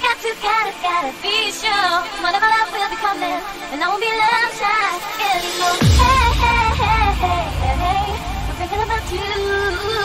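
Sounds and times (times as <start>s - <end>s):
high-pitched sung vocal: 0.0s - 10.0s
dance music synths: 0.4s - 10.0s.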